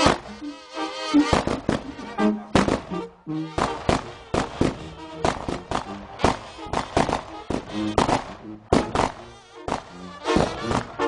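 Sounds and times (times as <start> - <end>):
sharp loud bangs: 0.0 - 0.3, 1.3 - 11.0
brass band playing held notes: 0.0 - 11.0.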